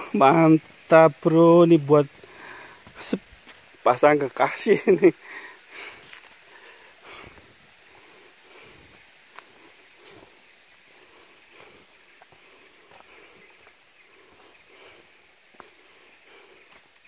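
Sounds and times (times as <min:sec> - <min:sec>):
footsteps on dirt path: 0:00.0 - 0:04.1, 0:05.7 - 0:17.0
forest ambience: 0:00.0 - 0:17.0.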